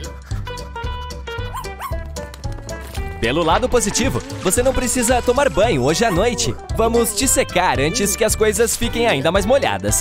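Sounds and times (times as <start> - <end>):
background music with steady beat: 0.0 - 10.0
small dog yipping: 1.4 - 2.0.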